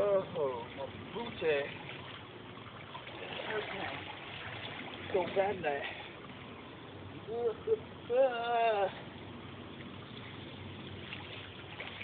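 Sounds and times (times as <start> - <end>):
creek water running over rocks: 0.0 - 12.0
person exclaiming: 7.3 - 9.0.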